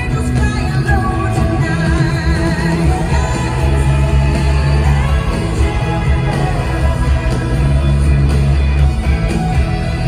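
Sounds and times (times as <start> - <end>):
woman singing lead: 0.0 - 8.6
live rock-pop band playing: 0.0 - 10.0.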